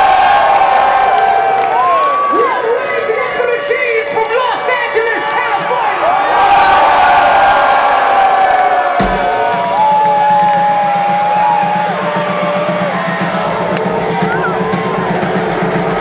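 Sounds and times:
crowd cheering and whooping: 0.0s - 16.0s
sharp thump through speakers: 9.0s - 9.8s.

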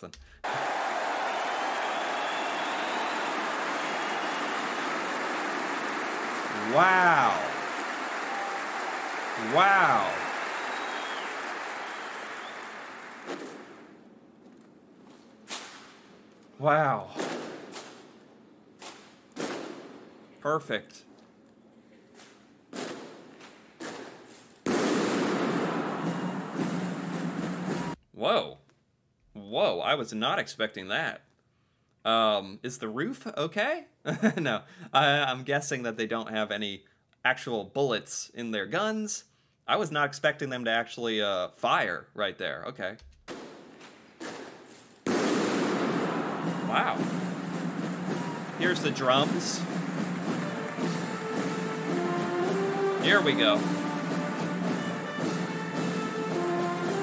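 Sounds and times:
audience applauding: 0.4s - 13.9s, 25.3s - 28.0s, 45.7s - 57.0s.

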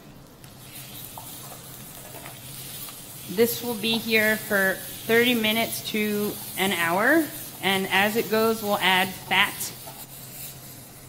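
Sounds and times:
food sizzling in hot fat: 0.5s - 11.0s.

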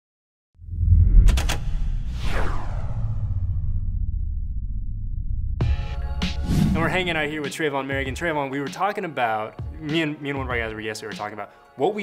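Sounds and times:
whoosh sweeping down: 0.6s - 5.6s, 6.2s - 7.3s
deep bass rumble: 0.6s - 7.4s.

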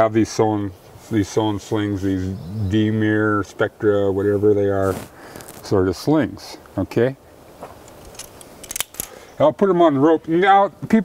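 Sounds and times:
metal carabiners clicking: 7.8s - 9.2s.

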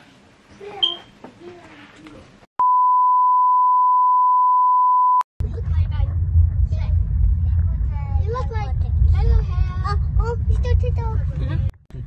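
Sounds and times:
steady electronic beep: 2.6s - 5.2s.

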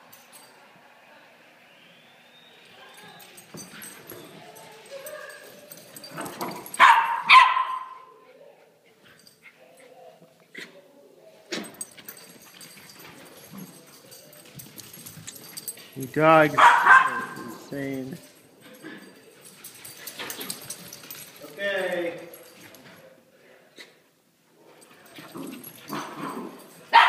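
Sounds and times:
puppy barks: 6.8s - 8.1s, 16.6s - 17.4s, 26.0s - 27.0s.

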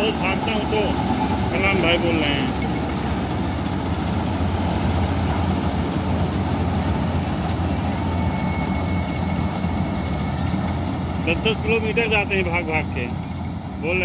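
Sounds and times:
combine harvester engine drone: 0.0s - 14.0s.

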